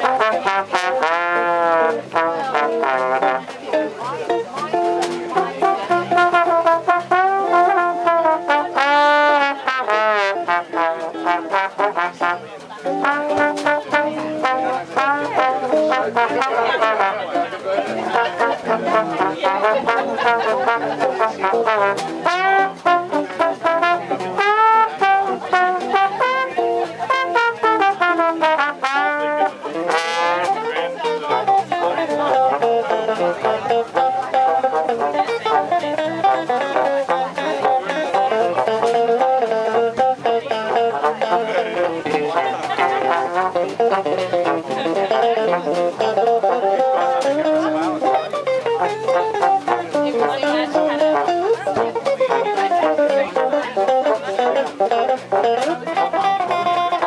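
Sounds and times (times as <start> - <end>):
jazz band playing: 0.0 - 57.0
trombone sliding notes: 0.0 - 57.0.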